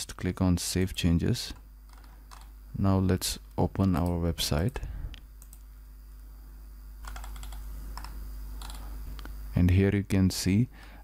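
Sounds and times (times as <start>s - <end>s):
steady low hum: 0.0s - 11.0s
computer keyboard typing: 1.9s - 2.5s, 7.0s - 8.8s.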